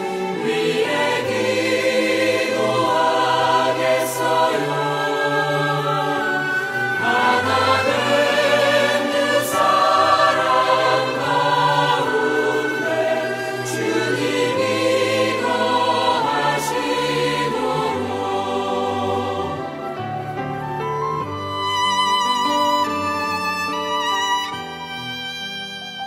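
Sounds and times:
choir singing sustained chords: 0:00.0 - 0:21.4.

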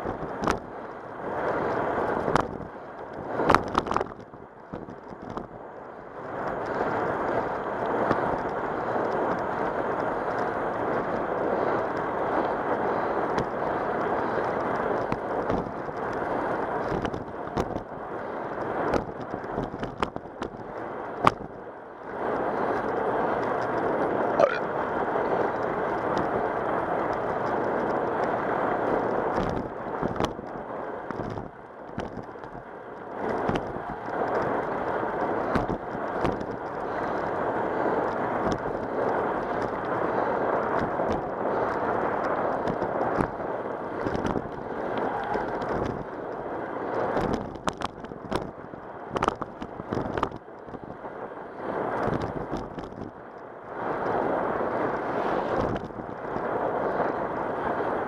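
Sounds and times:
bicycle tyre noise: 0:00.0 - 0:58.0
wind on microphone: 0:00.0 - 0:58.0.

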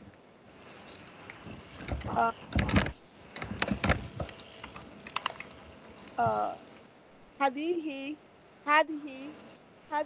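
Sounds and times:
keyboard typing: 0:01.9 - 0:06.2.

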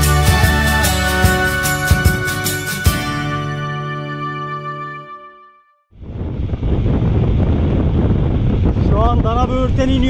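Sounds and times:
music: 0:00.0 - 0:05.9
wind noise on microphone: 0:05.9 - 0:10.0.

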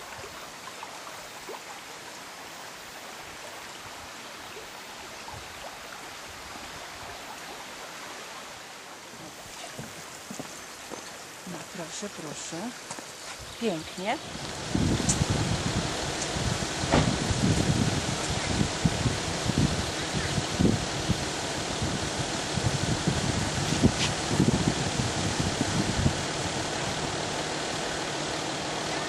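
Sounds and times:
steady rushing hiss: 0:00.0 - 0:29.0
wind buffeting microphone: 0:13.4 - 0:29.0.

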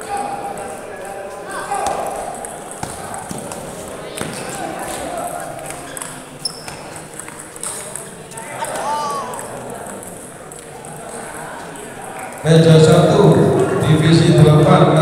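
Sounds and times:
murmur of voices: 0:00.0 - 0:15.0.

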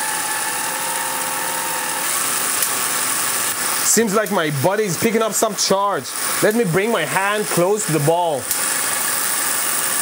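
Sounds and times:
motor whir and rattle: 0:00.0 - 0:05.1, 0:06.1 - 0:10.0.

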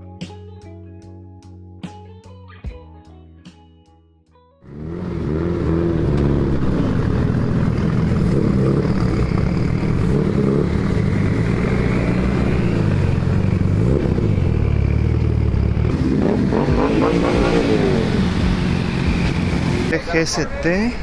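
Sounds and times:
vehicle engine revving: 0:04.7 - 0:20.3.

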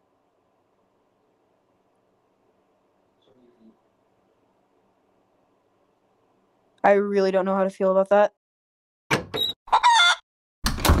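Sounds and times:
chicken clucking: 0:09.7 - 0:10.2
chicken squawk: 0:09.7 - 0:10.2.

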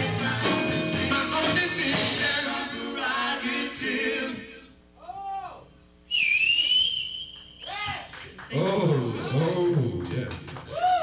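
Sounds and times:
loud piercing human whistle: 0:06.1 - 0:08.0.

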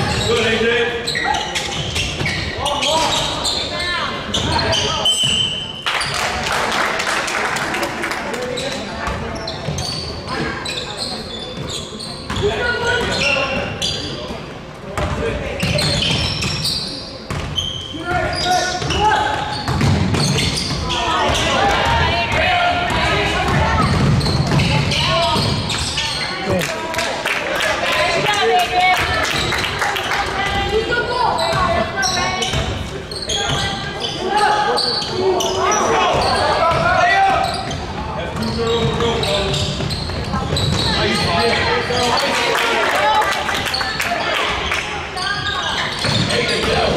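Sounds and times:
echoing shouts and voices: 0:00.0 - 0:46.9
basketball bouncing on court: 0:17.3 - 0:17.6, 0:18.2 - 0:26.0, 0:36.1 - 0:41.6, 0:45.9 - 0:46.9.

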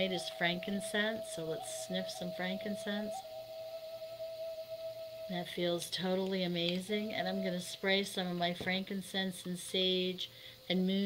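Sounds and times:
sustained music tone: 0:00.0 - 0:07.7.

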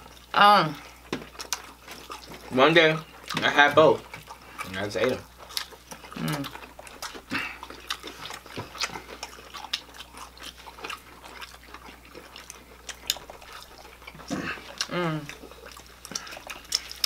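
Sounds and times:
people biting and chewing: 0:00.0 - 0:17.0
lip smacks: 0:05.4 - 0:17.0
person humming mmm: 0:06.1 - 0:06.5, 0:14.3 - 0:15.4.

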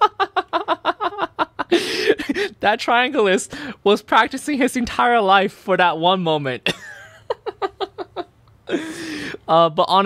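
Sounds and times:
man laughing hard: 0:00.0 - 0:02.6, 0:06.7 - 0:09.0
breathy gasp: 0:08.7 - 0:09.4.

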